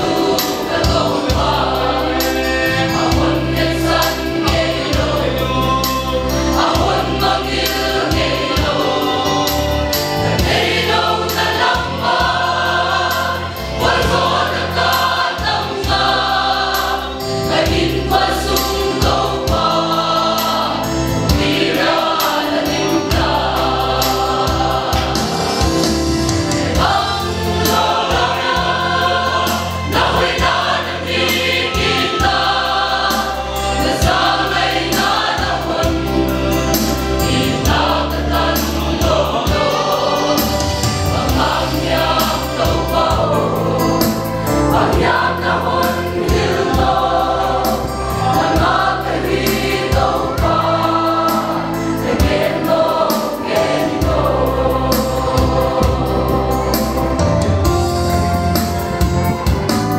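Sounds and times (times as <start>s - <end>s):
choir singing a hymn: 0.0s - 59.9s.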